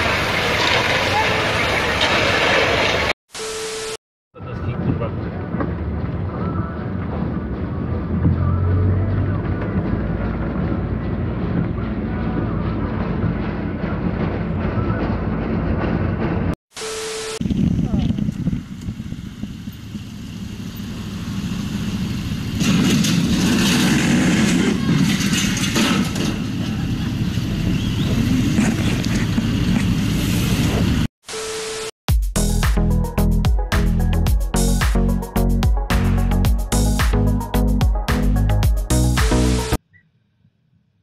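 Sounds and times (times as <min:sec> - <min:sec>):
wind: 0:00.0 - 0:31.9, 0:37.0 - 0:41.0
car road and engine noise: 0:04.4 - 0:16.6, 0:17.8 - 0:31.1
motorcycle engine: 0:07.1 - 0:16.6, 0:18.0 - 0:28.9.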